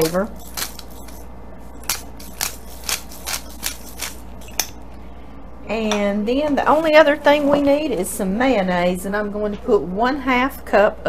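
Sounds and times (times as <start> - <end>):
pepper grinder crunching: 0.0 - 4.9.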